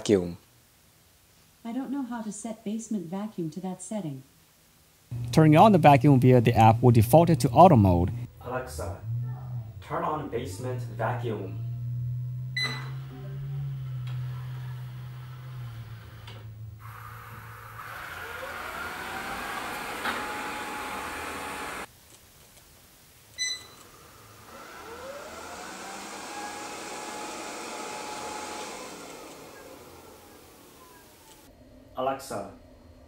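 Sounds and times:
robot vacuum motor whining: 0:10.5 - 0:21.9, 0:23.8 - 0:31.5
short beep: 0:12.5 - 0:13.1.

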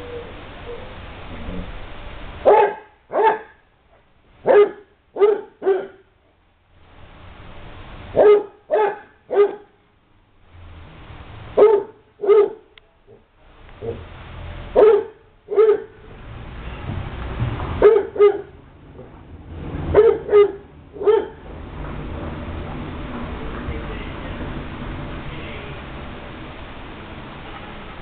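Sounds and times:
dog barking playfully: 0:02.4 - 0:03.6, 0:04.4 - 0:06.0, 0:08.2 - 0:09.7, 0:11.6 - 0:12.7, 0:14.8 - 0:16.0, 0:17.8 - 0:18.6, 0:19.9 - 0:21.4.

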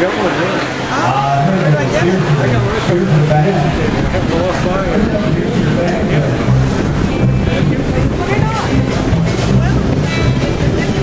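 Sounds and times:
background voices: 0:00.0 - 0:11.0
wind buffeting microphone: 0:01.0 - 0:11.0.

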